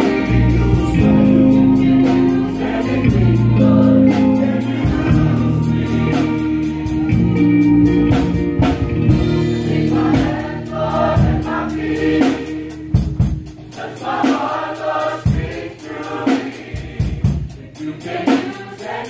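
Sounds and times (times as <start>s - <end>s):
choir singing gospel song: 0.0s - 19.0s
drum beat: 0.0s - 19.0s.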